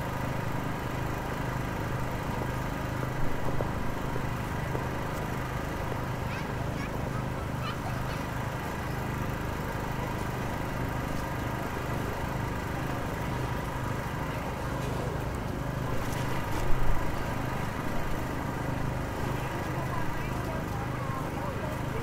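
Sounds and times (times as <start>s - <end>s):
machinery engines droning: 0.0s - 22.0s.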